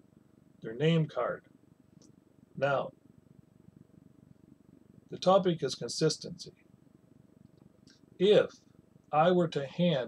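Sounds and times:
thin steady hum: 0:00.0 - 0:10.0.

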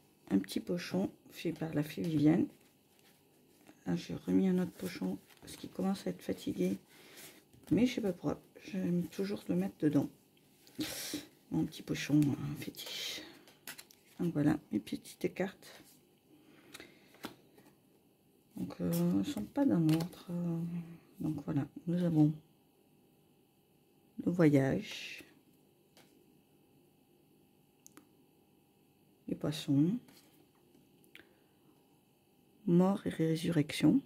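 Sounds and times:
cards sliding: 0:16.7 - 0:17.7.

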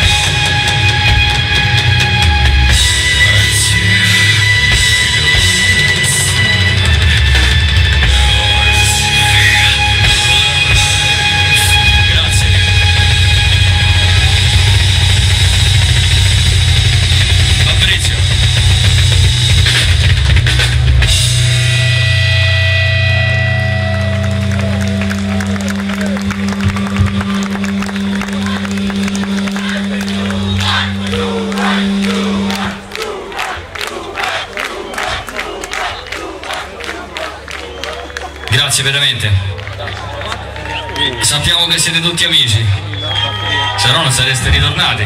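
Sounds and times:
metal band playing loud: 0:00.0 - 0:36.9
crowd clapping and cheering: 0:00.0 - 0:45.0.

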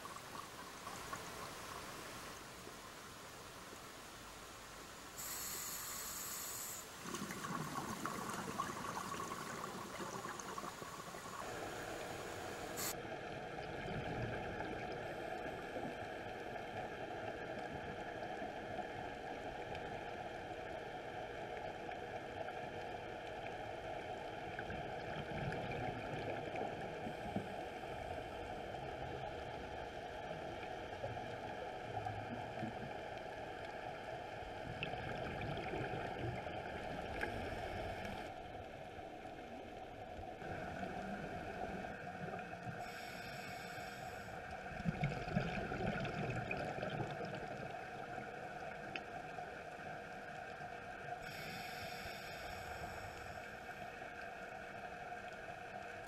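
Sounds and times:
bubbles hissing: 0:05.2 - 0:13.0
underwater rushing hum: 0:05.2 - 0:56.0.

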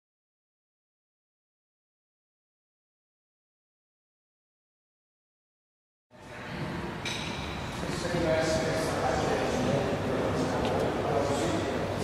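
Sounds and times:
reverberant sports hall hum: 0:06.1 - 0:12.0.

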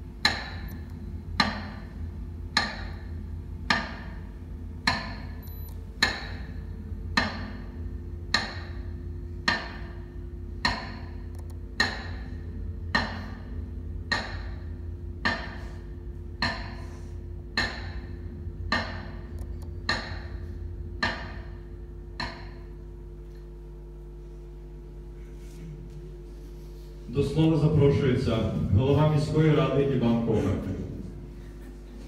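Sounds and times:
steady low hum: 0:00.0 - 0:32.0.

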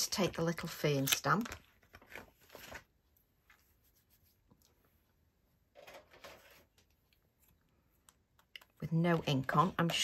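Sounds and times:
faint handling sounds: 0:00.0 - 0:10.0
soft rustle: 0:01.6 - 0:07.9.

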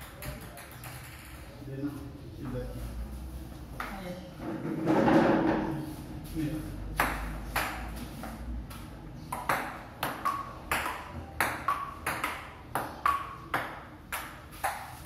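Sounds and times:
ping pong ball hitting paddles: 0:00.0 - 0:01.5, 0:06.9 - 0:15.0
ball bouncing on wooden table: 0:09.3 - 0:15.0.

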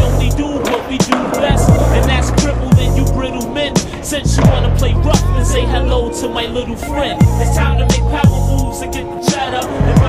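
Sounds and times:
skateboard popping and landing clacks: 0:00.0 - 0:03.0, 0:03.8 - 0:05.0
hip hop beat with bass and drums: 0:00.0 - 0:10.0
skateboard wheels rolling on concrete: 0:00.0 - 0:10.0.

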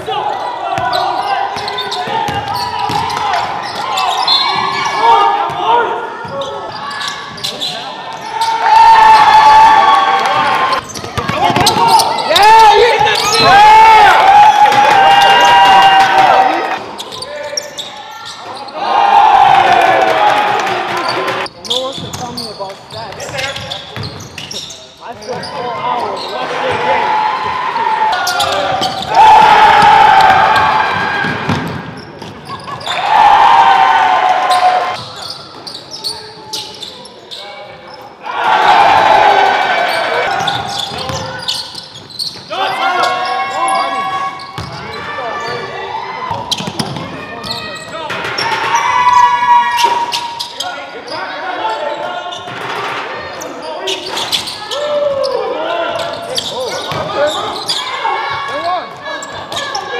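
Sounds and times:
basketball bouncing on hardwood: 0:31.2 - 0:31.8.

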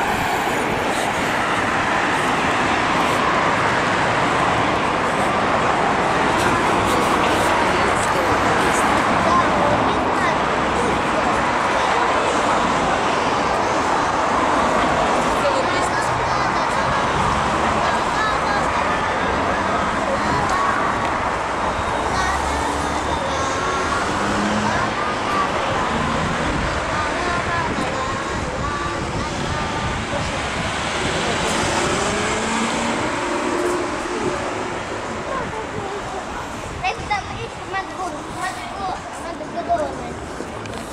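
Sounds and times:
passers-by talking: 0:00.0 - 0:40.9
traffic noise: 0:00.0 - 0:40.9.

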